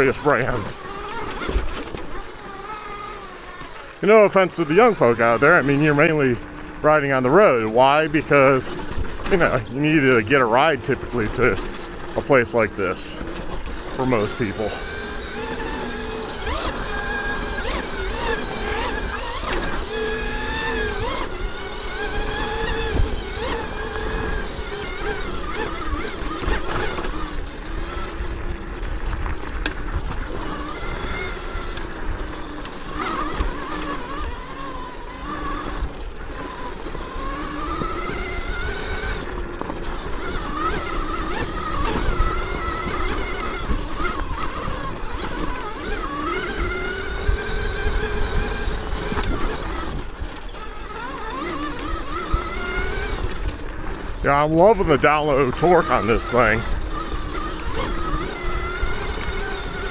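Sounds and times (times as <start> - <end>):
electric motor whining: 0.0 - 59.9
tyres rumbling on dirt: 0.0 - 59.9.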